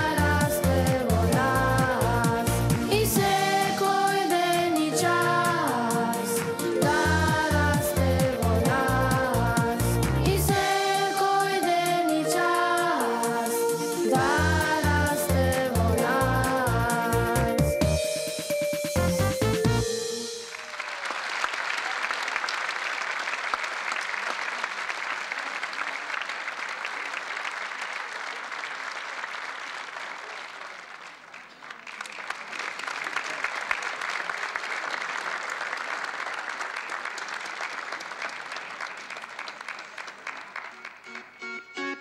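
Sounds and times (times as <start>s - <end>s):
large audience applauding: 20.2s - 41.5s.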